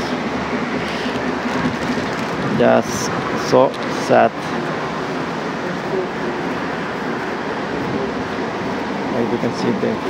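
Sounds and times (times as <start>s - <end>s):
continuous rushing hiss: 0.0s - 10.0s.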